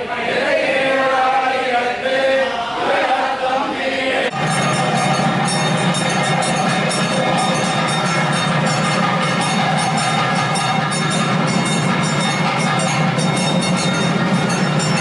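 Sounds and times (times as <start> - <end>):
clatter of bells and percussion: 4.3 - 15.0
steady held tone: 4.3 - 15.0.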